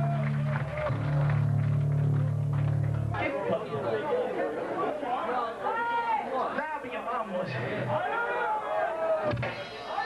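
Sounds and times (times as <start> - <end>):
crowd chatter and shouting: 0.0 - 10.0.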